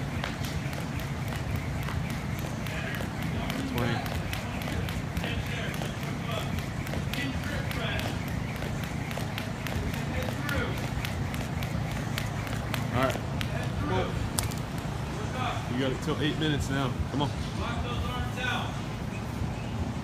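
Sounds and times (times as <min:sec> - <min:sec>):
jump rope slapping rubber floor: 0:00.0 - 0:14.9.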